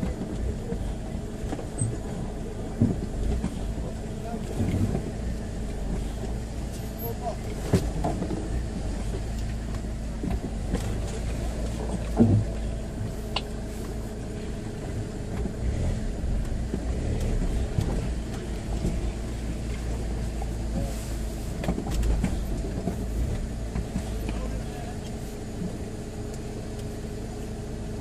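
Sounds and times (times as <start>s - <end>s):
car engine at low revs: 0.0s - 28.0s.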